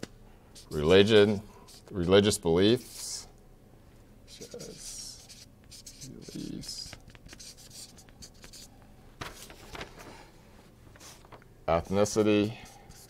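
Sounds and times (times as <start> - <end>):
marker scratching on paper: 0.6 - 3.3, 4.3 - 8.7, 11.0 - 13.0.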